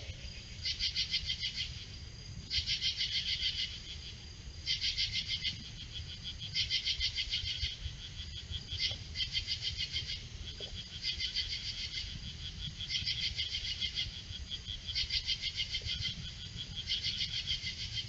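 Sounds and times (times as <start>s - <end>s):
night insects calling: 0.0s - 18.0s.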